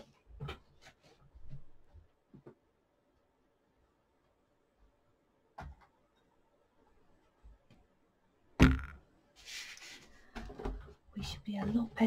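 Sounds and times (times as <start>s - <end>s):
hard object knocking down: 8.6s - 9.0s.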